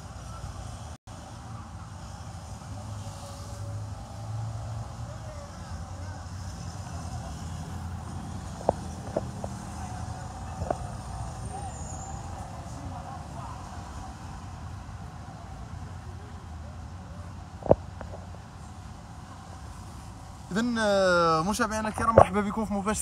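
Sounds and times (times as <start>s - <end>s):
city road traffic rumble: 0.0s - 23.0s.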